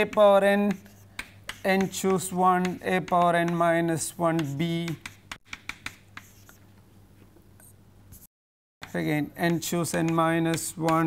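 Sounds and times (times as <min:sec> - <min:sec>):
chalk tapping on a chalkboard: 0:00.0 - 0:06.6, 0:08.8 - 0:11.0.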